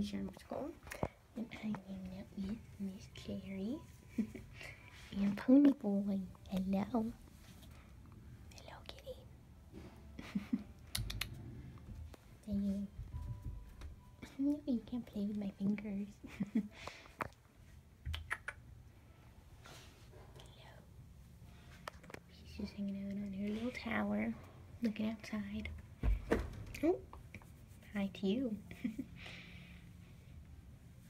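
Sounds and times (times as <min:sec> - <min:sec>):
faint soft whisper-like sound: 0:00.0 - 0:10.1, 0:19.0 - 0:25.7
person whispering: 0:08.5 - 0:09.3.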